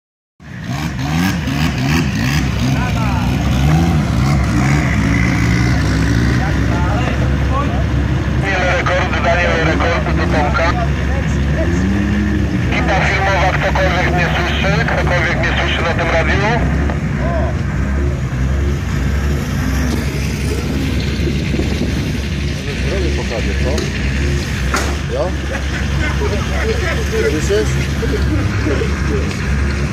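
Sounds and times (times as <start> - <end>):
vehicle motor revving: 0.5 - 29.9
people talking: 2.7 - 3.5, 6.3 - 12.0, 12.7 - 17.6, 22.6 - 23.9, 24.8 - 29.4.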